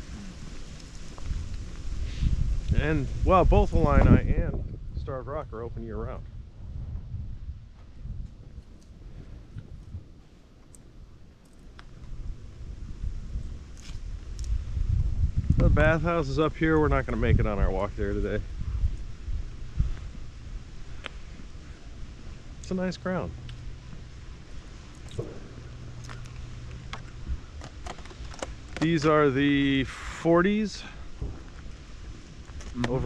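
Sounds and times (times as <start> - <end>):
footsteps on paved road: 0.0 - 2.8, 7.6 - 15.8, 23.4 - 29.1, 31.0 - 33.0
wind buffeting microphone: 0.0 - 11.2, 11.8 - 29.8, 30.5 - 33.0
low steady hum: 0.0 - 33.0.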